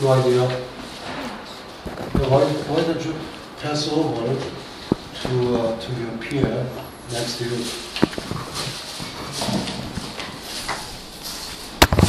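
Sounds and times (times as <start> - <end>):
rustling handling noise: 0.0 - 12.0.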